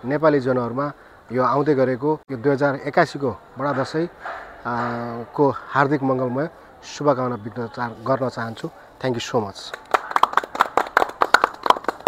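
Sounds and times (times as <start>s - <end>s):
small group applauding: 9.6s - 12.0s.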